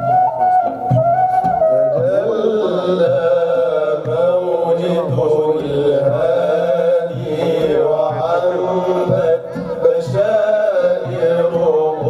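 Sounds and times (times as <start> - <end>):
low drum beat: 0.9 - 12.0
person chanting a religious song: 1.7 - 12.0.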